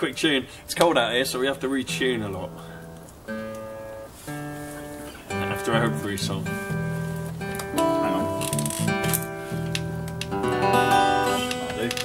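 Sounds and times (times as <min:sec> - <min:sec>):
acoustic guitar strings plucked: 0:00.0 - 0:12.0.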